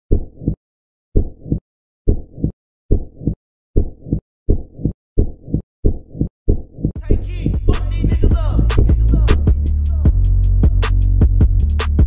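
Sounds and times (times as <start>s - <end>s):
heartbeat double thumps: 1.2s - 9.7s.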